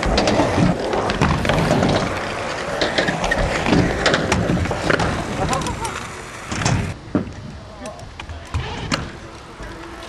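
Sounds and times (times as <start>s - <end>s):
scooter wheels rolling on asphalt: 0.0s - 10.0s.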